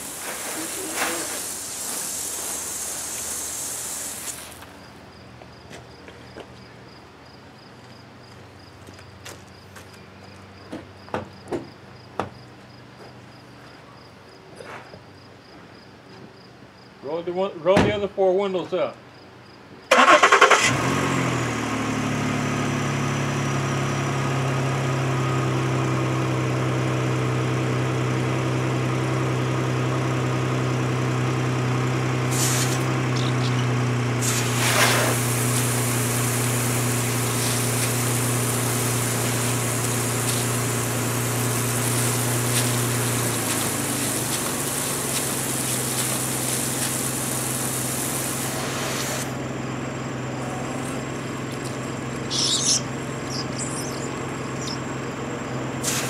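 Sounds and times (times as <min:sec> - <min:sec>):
washer fluid spraying hiss: 0:00.0 - 0:05.0, 0:32.2 - 0:49.4, 0:52.2 - 0:56.0
car engine cranking and idling: 0:19.9 - 0:56.0.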